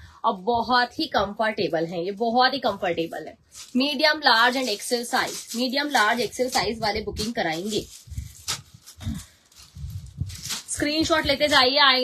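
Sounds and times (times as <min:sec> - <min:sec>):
handling of clothes and plastic: 0:01.1 - 0:12.0
low thumps: 0:08.0 - 0:11.6.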